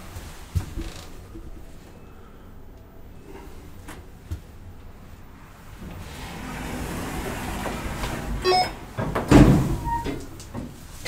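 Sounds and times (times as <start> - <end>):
elevator mechanical hum: 0.0 - 11.0.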